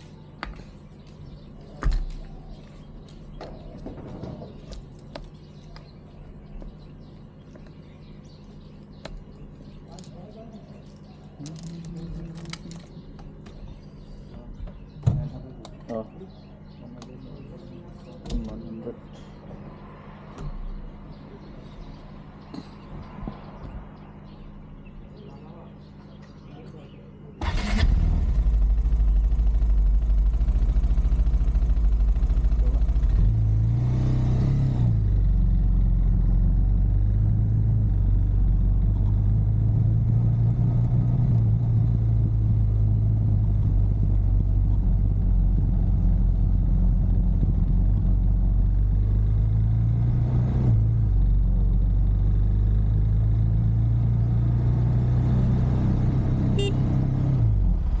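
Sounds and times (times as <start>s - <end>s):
motorcycle engine revving: 27.4s - 58.0s.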